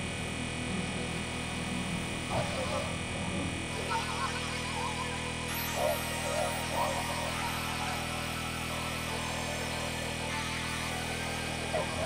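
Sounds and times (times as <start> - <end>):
synthesizer drone: 0.0 - 12.0
buzzing warbling synth layer: 0.6 - 12.0.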